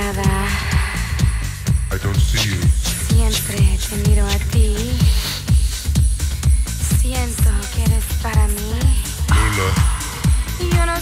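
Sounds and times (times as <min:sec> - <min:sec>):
house music: 0:00.0 - 0:11.0
kick drum: 0:00.0 - 0:11.0.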